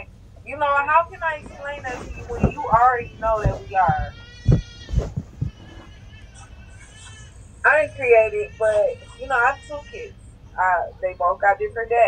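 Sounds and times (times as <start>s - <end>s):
dull low thumps: 0.4s - 6.0s.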